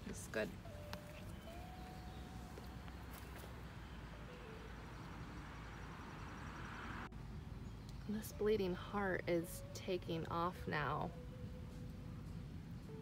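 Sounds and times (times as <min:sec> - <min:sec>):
outdoor garden ambience: 0:00.0 - 0:13.0.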